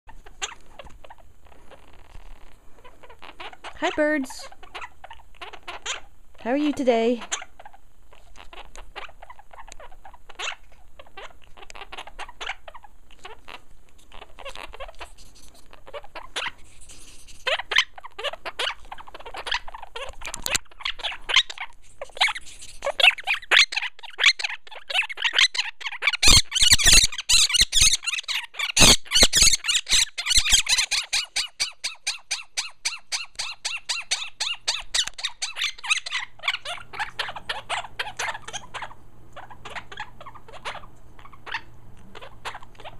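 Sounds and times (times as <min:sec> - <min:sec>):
parrots chirping and squawking: 0:00.1 - 0:42.9.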